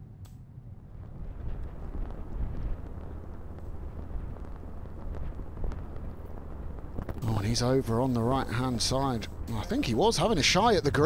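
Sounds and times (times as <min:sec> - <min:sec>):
wind buffeting the microphone: 0:00.7 - 0:11.0.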